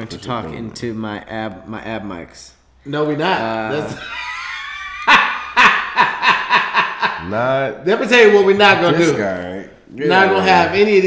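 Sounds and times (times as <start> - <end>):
men laughing hard: 3.9 - 7.3.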